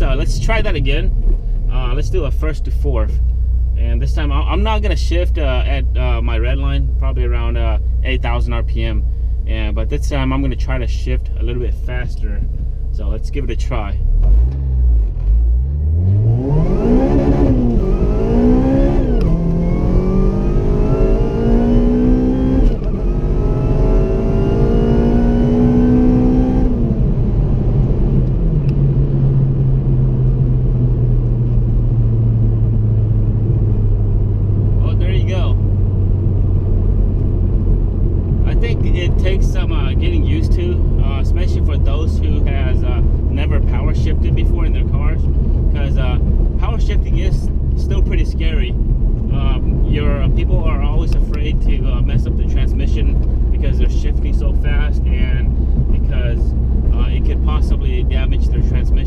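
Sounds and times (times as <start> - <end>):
car engine accelerating: 11.4 - 59.0.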